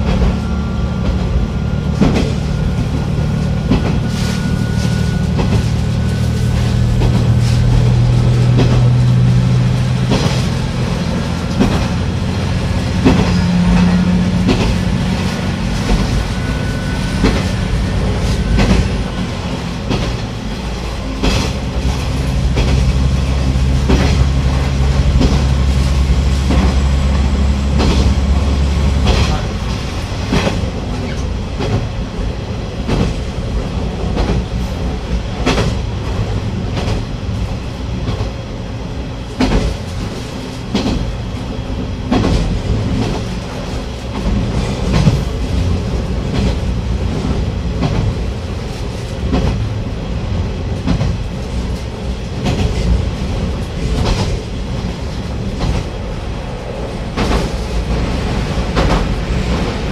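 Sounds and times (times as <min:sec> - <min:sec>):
diesel engine droning: 0:00.0 - 0:32.7.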